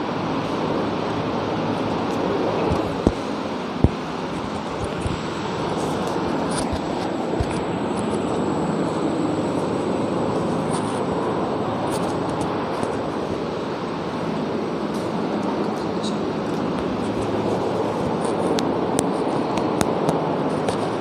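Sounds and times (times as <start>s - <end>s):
faint high whine: 0.0s - 21.0s
steady background noise: 0.0s - 21.0s.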